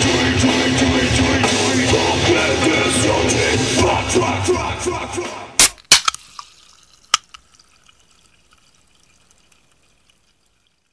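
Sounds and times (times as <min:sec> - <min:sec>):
carbonated drink fizzing: 0:05.6 - 0:10.9
small clicks: 0:05.6 - 0:10.9.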